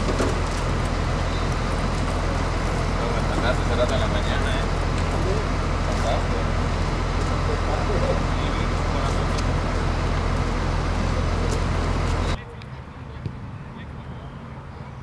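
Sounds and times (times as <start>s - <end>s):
bus engine idling: 0.0s - 15.0s
people's voices: 0.0s - 15.0s.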